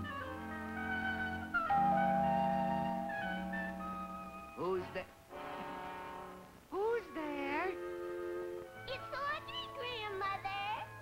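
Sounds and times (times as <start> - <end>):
orchestral held chords: 0.0 - 6.5.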